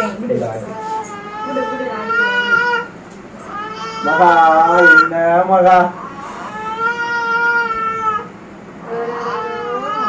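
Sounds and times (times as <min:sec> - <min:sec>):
infant crying: 0:00.7 - 0:02.9, 0:03.5 - 0:05.1, 0:06.0 - 0:10.0.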